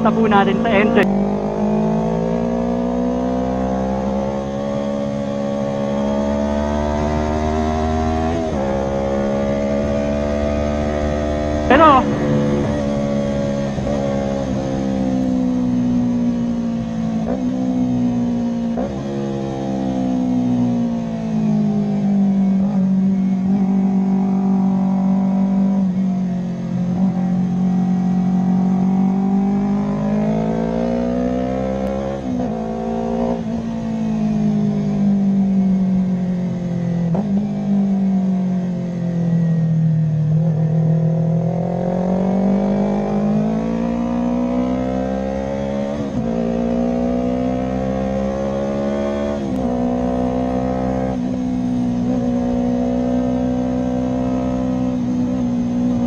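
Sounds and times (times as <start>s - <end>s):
motorcycle engine at speed: 0.0s - 56.0s
wind rush: 11.5s - 15.1s.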